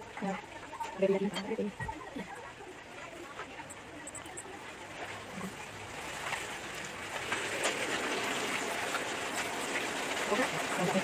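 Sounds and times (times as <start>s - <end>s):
oil sizzling in frying pan: 6.6s - 11.0s.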